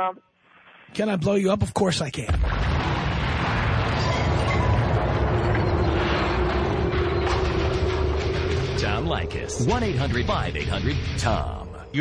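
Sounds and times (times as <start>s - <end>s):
deep explosion rumble: 2.3s - 12.0s.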